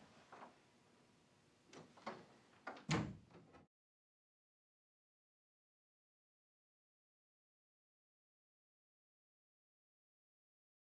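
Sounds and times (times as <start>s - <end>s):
door shutting thump: 1.8s - 3.7s.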